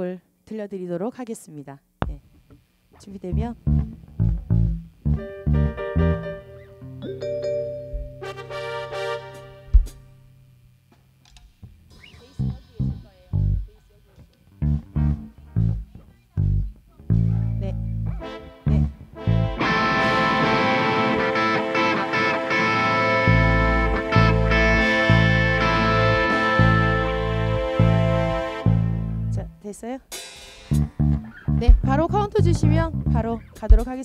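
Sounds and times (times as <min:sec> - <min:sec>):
bass guitar notes plucked: 0:03.0 - 0:10.8, 0:11.6 - 0:13.8, 0:14.5 - 0:29.6, 0:30.7 - 0:34.0
electric guitar chords ringing: 0:03.2 - 0:10.7, 0:14.6 - 0:29.6.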